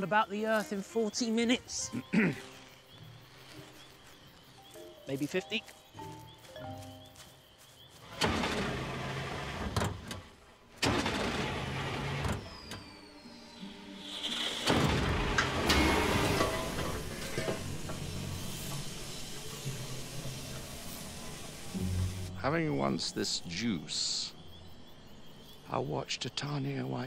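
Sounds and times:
engine surging and running: 8.0s - 22.3s.

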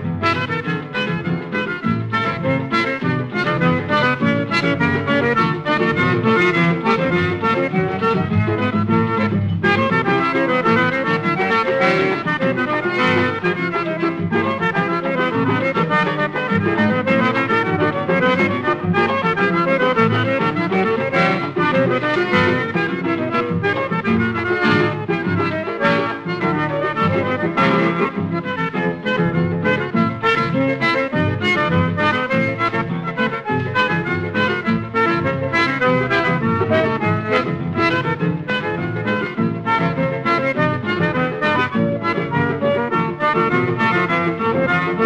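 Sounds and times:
backing group playing: 0.0s - 45.0s
lively accordion melody: 0.0s - 45.0s.

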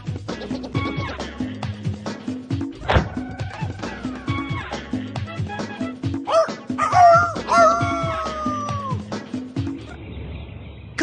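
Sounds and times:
theme music with steady beat: 0.0s - 9.9s
cartoon rooster crowing: 6.3s - 9.0s.

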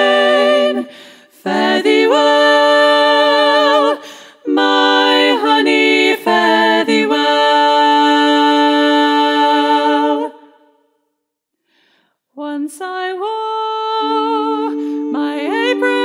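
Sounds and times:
a cappella choir singing: 0.0s - 10.9s, 12.4s - 16.0s.

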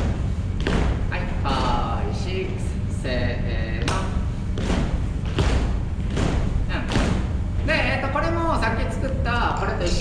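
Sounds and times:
feet stomping on studio floor: 0.0s - 1.9s, 3.8s - 7.9s
person speaking: 1.1s - 4.2s.

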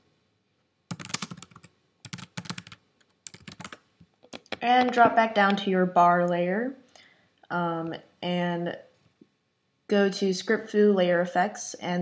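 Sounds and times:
typing on computer keyboard: 0.9s - 5.1s.

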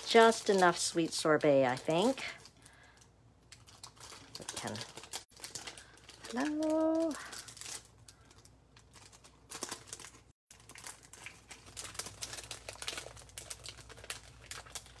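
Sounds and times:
plastic packet crinkling: 0.0s - 15.0s.

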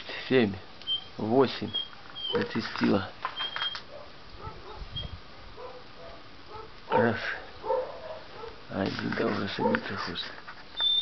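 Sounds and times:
distant animal calls: 0.8s - 2.7s, 3.3s - 8.6s.

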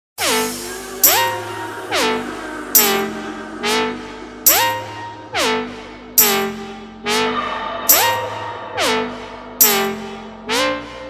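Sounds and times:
electronic lead with pitch slides: 0.2s - 11.0s.

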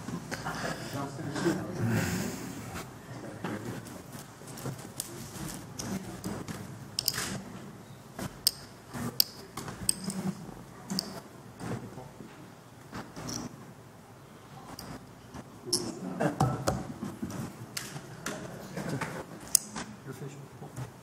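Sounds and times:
people talking quietly: 0.1s - 13.5s, 14.1s - 21.0s.

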